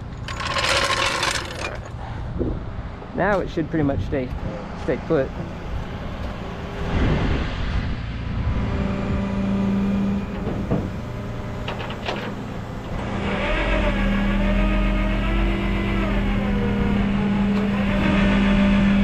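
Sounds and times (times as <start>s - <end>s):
hydraulic winch humming: 0.0s - 2.0s, 9.6s - 19.0s.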